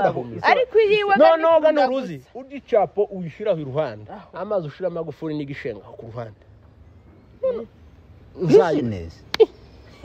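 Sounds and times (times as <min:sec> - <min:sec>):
low background hum: 0:00.0 - 0:10.0
man speaking: 0:01.1 - 0:06.4, 0:08.3 - 0:09.2.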